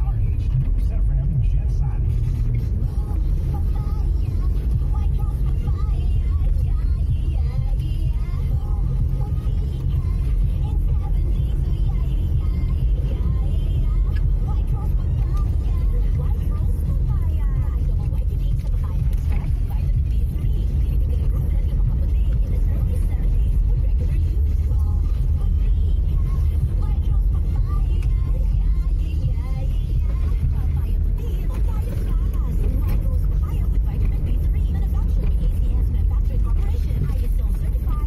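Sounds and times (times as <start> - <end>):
car engine rumble: 0.0 - 38.0
tyres on dirt road: 0.0 - 38.0.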